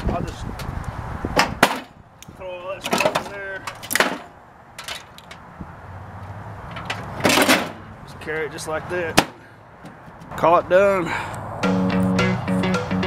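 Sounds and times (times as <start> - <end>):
metal parts knocking and clattering: 2.8 - 5.4, 6.8 - 7.8.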